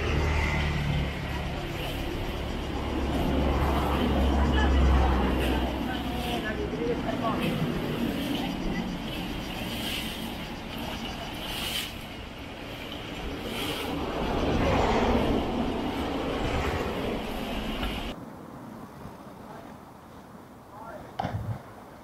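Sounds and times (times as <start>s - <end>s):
vehicle passing: 0.0s - 18.2s
road traffic: 0.0s - 22.0s
people's voices: 0.7s - 18.1s.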